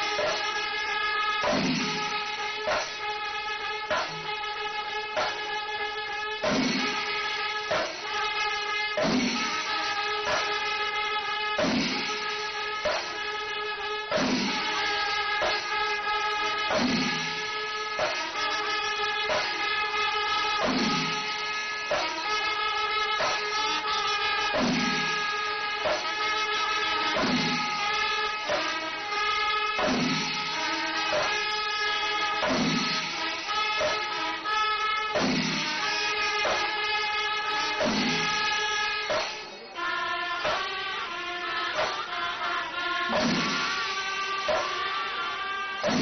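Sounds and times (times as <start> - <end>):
cymbals striking: 0.0 - 46.0
drums beating slowly: 0.0 - 46.0
horn blasts: 0.0 - 46.0.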